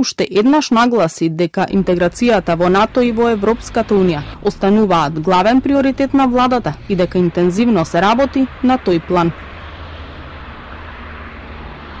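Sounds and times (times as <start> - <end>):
outdoor background noise with low rumble: 1.6 - 12.0.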